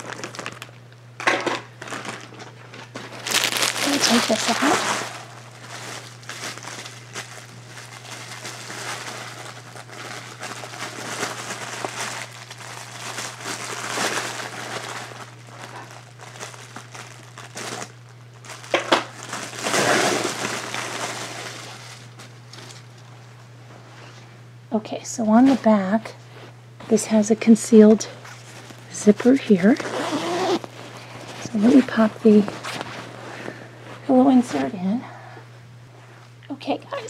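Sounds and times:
plastic packaging crinkling: 0.0s - 23.3s, 28.2s - 34.0s
steady low hum: 0.0s - 37.0s.

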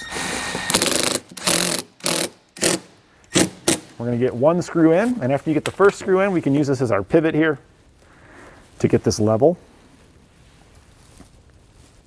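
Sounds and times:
impact driver hammering screw: 0.1s - 3.9s.

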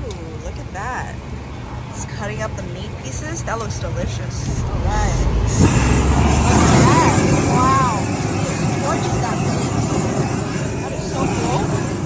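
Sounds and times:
person speaking: 2.0s - 9.9s
blowtorch flame rushing: 4.5s - 12.0s.

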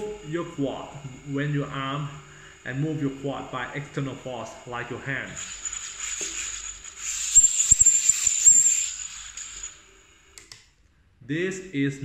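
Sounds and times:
high-pitched motor whine: 0.0s - 10.2s.

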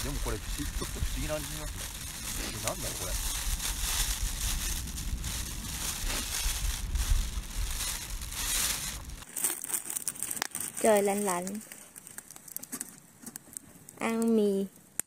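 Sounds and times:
low rumble: 0.0s - 9.2s
plastic wrapper crinkling: 0.0s - 14.2s.

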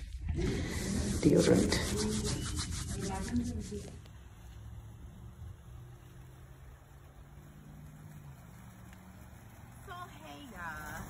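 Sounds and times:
outdoor rumble: 3.7s - 11.0s
woman speaking: 9.9s - 11.0s.

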